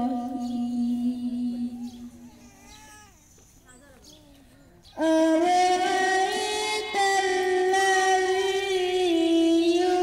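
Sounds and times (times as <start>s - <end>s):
boy singing into microphone: 0.0s - 2.4s, 4.9s - 10.0s.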